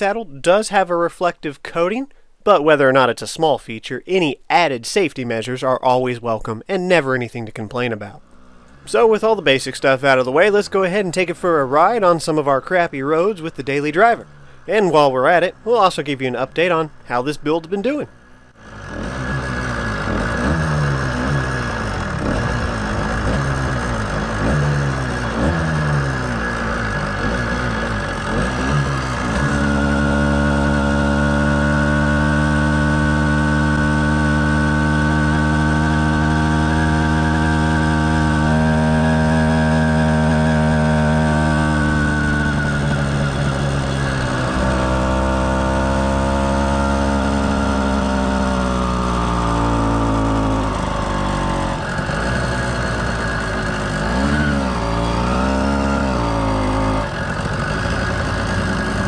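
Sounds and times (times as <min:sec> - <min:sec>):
two-stroke engine on the road: 0:06.9 - 0:59.0.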